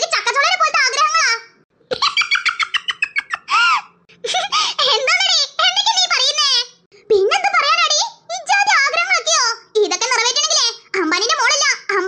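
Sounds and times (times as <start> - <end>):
high-pitched cartoon voice talking: 0.0 - 1.6, 4.8 - 12.0.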